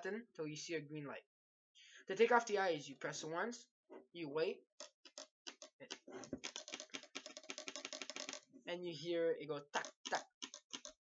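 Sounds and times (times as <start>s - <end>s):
paintball marker clicking: 4.8s - 8.4s, 9.8s - 11.0s.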